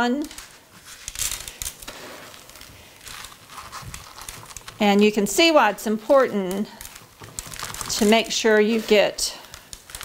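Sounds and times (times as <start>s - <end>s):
crinkly rustling: 0.2s - 10.0s.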